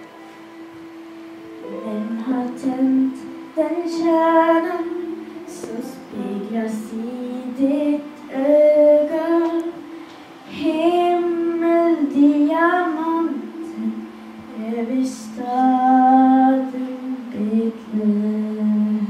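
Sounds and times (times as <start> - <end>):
girl singing into a microphone: 1.6 - 19.0.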